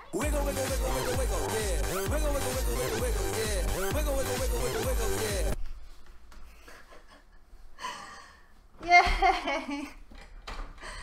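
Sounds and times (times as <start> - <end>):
person breathing hard: 7.8 - 8.7, 10.7 - 11.0.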